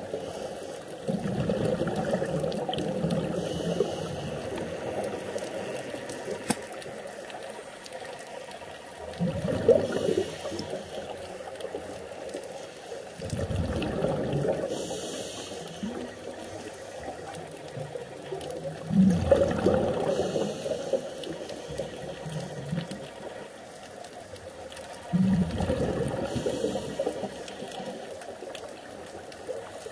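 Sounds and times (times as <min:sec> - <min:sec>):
bubbles rushing underwater: 0:01.0 - 0:06.9, 0:08.9 - 0:12.0, 0:13.2 - 0:14.9, 0:15.7 - 0:20.9, 0:25.0 - 0:27.7
regulator hiss: 0:03.3 - 0:05.0, 0:14.7 - 0:17.2, 0:20.0 - 0:22.3, 0:26.2 - 0:28.2.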